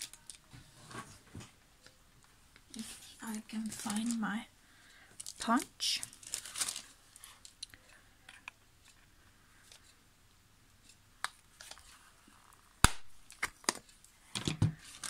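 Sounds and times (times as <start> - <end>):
paper card rustling: 2.8 - 4.2.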